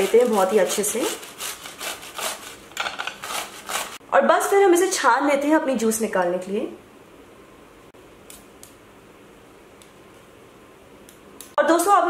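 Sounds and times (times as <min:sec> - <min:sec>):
cucumber rasping on metal grater: 0:00.0 - 0:04.0.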